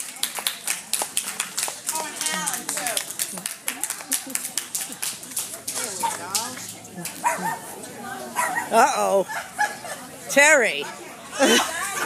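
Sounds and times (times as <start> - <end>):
audience clapping: 0.0 - 7.3
voices talking: 1.8 - 12.0.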